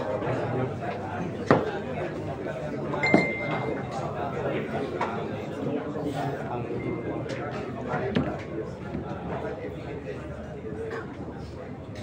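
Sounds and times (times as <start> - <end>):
murmur of crowd voices: 0.0 - 12.0
short ringing tone: 3.0 - 3.9, 6.6 - 7.3.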